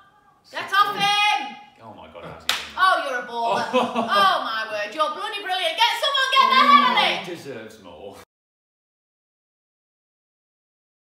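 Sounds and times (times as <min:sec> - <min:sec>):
sharp hand clap: 0:02.4 - 0:02.8
fans crying out: 0:05.8 - 0:07.3.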